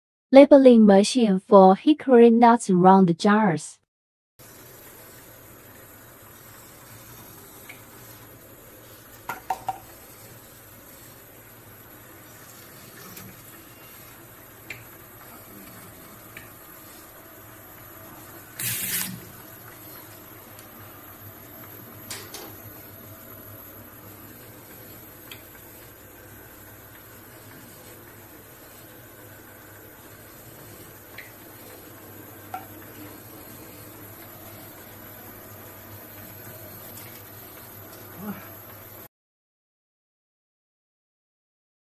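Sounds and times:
labeling machine humming: 4.4s - 39.0s.

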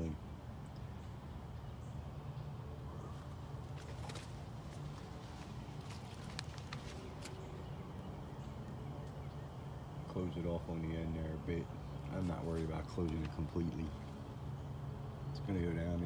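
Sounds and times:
footsteps on leaf litter: 3.2s - 7.6s.

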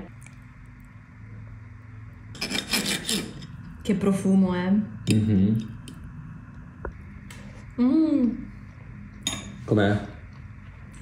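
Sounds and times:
knife and fork cutting food: 2.4s - 3.6s.

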